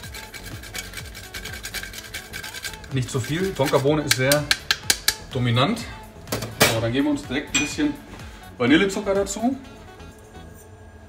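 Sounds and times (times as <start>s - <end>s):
bean scraping on a grater: 0.0s - 4.4s
soft background music: 0.0s - 11.0s.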